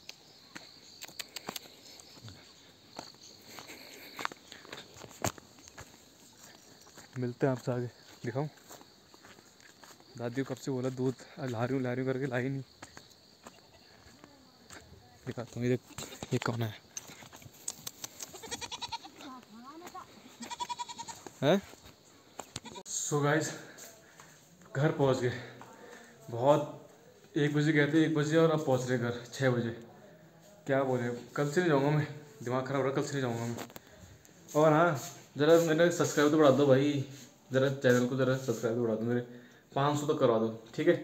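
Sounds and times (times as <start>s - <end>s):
footsteps on dry grass and stones: 0.2s - 22.8s
goat bleating: 18.3s - 19.3s, 20.4s - 21.3s, 22.6s - 22.9s
man speaking: 21.4s - 21.7s.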